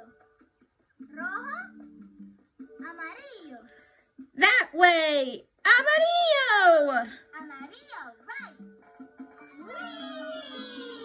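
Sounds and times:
cartoon music from tv: 0:00.0 - 0:11.0.

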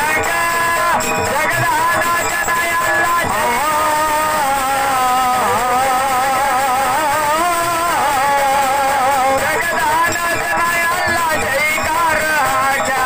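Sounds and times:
man singing folk song: 0:00.0 - 0:13.0.

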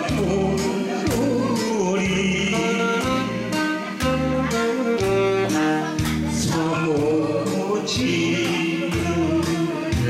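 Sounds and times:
man singing into microphone: 0:00.0 - 0:03.7, 0:05.5 - 0:10.0
karaoke backing track with beat: 0:00.0 - 0:10.0.

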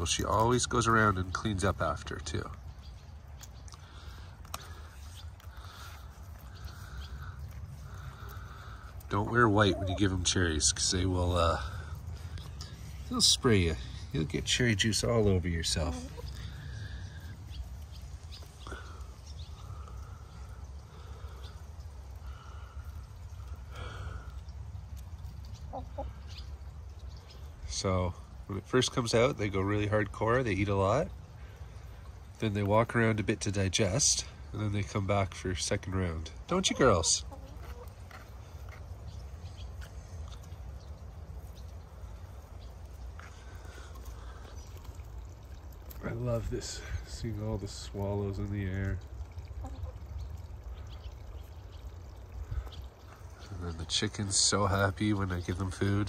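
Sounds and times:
hens clucking softly: 0:05.3 - 0:11.1, 0:24.3 - 0:27.0, 0:36.4 - 0:40.7, 0:49.0 - 0:53.6.

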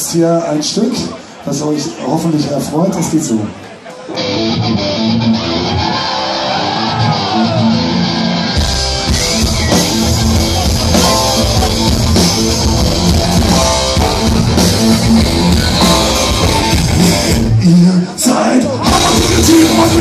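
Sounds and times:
electric guitar: 0:04.0 - 0:17.6
punk rock band playing: 0:04.0 - 0:20.0.

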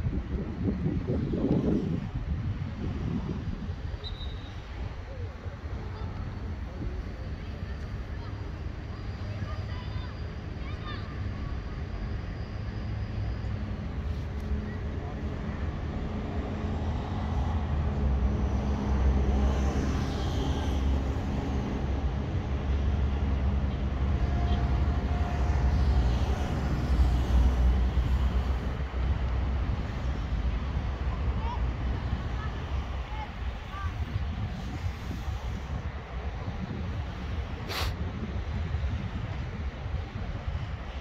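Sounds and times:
faint distant voices: 0:02.9 - 0:21.6.

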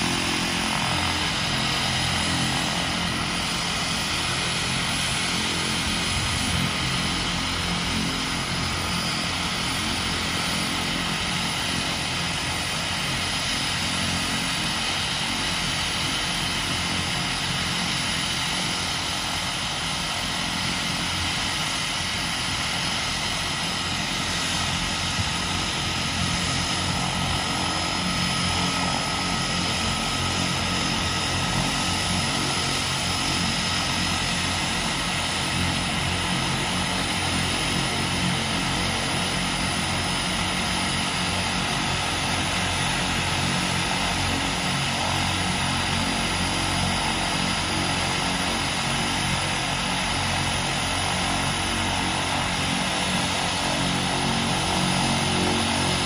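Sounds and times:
high turbine whine: 0:00.0 - 0:56.0
propeller drone: 0:00.0 - 0:56.0.

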